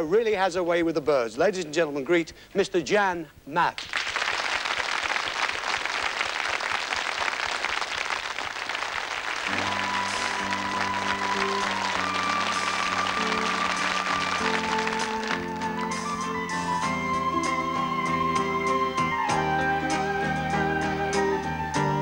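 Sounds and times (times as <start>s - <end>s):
audience applauding: 3.8s - 16.2s
slow band music: 9.4s - 22.0s.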